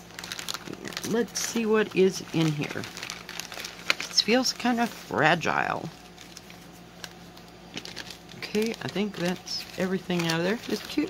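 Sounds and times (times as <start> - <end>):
plastic bags rustling: 0.0 - 11.0.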